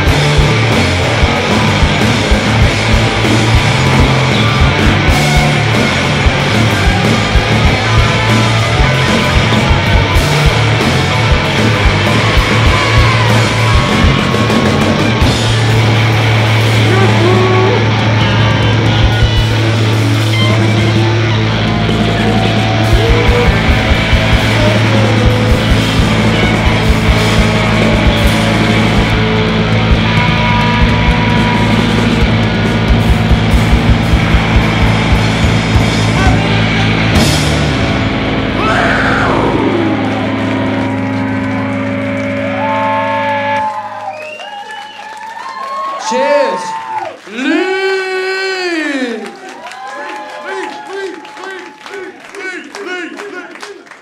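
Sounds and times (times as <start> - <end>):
drum hits: 0.0 - 17.5, 22.0 - 41.2
rock band playing loudly: 0.0 - 45.0
crowd cheering and whistling: 0.0 - 54.0.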